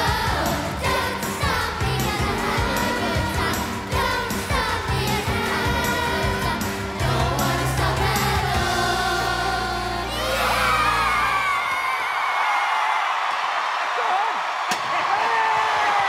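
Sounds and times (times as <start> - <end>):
backing music with group singing: 0.0 - 11.6
audience cheering and whooping: 10.0 - 16.0.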